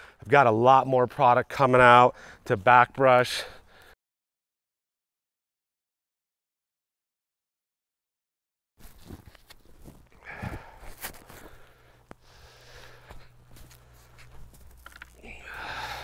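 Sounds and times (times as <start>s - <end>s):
steady low hum: 8.8s - 16.0s
footsteps on grass: 12.8s - 15.2s
tools clicking and knocking: 14.8s - 15.2s.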